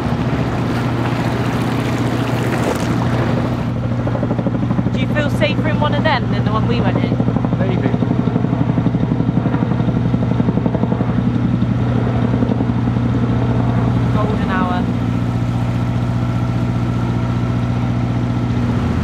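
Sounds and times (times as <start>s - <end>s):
diesel engine running: 0.0s - 19.0s
helicopter rotor beat: 0.0s - 19.0s.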